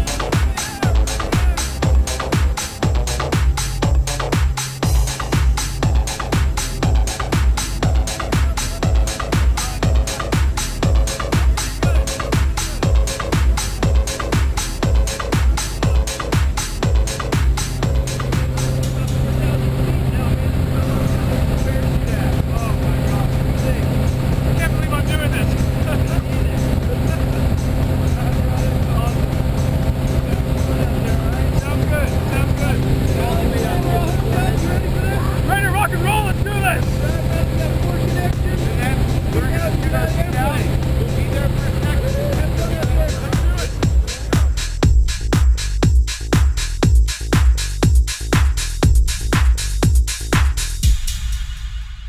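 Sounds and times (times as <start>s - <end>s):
voices calling out: 0.0s - 2.3s
plane engine droning: 4.8s - 44.6s.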